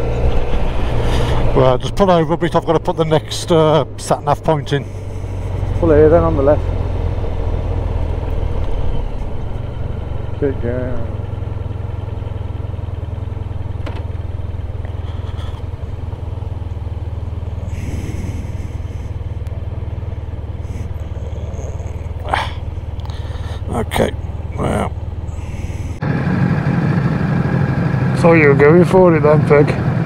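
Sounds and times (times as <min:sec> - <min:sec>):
motorcycle engine idling: 0:00.0 - 0:30.0
motorcycle engine revving away: 0:04.9 - 0:28.2.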